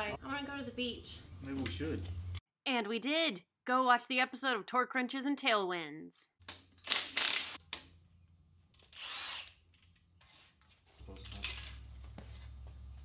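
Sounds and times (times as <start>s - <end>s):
hand-held power tool bursts: 6.8s - 7.6s, 8.8s - 9.6s.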